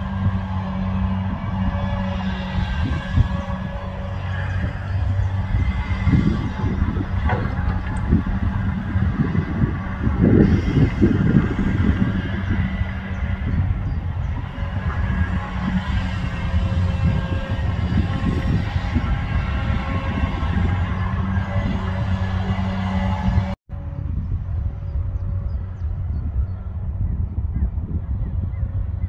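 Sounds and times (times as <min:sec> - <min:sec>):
excavator diesel engine running: 0:00.0 - 0:23.9
dull low rumble: 0:00.0 - 0:29.0.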